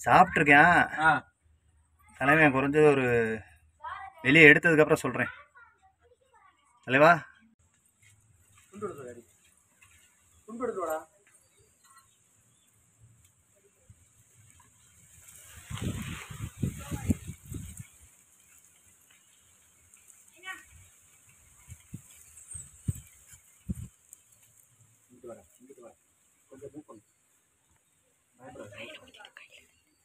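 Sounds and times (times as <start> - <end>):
faint high-pitched hiss: 8.0 - 30.0.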